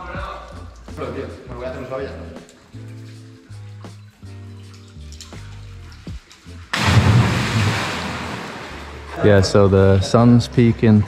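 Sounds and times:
background music sustained notes: 0.0 - 11.0
loud splash into water: 6.8 - 9.2.

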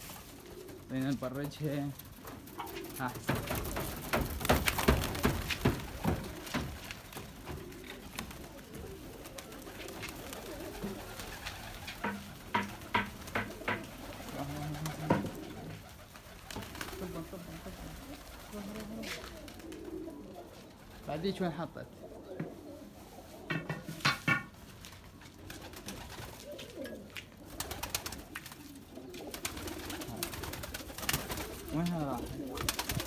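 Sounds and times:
pigeons cooing: 0.0 - 33.0
wing claps and flapping: 2.0 - 17.1, 23.5 - 33.0.

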